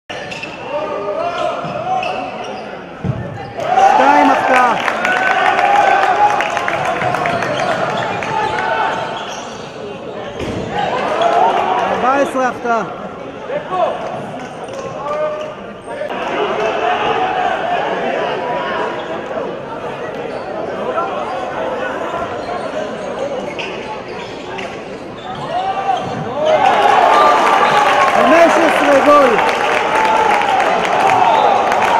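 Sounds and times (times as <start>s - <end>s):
sneakers squeaking: 0.1s - 4.3s, 7.0s - 11.4s, 20.0s - 27.0s
players' voices: 0.1s - 31.9s
players calling out: 3.5s - 9.6s.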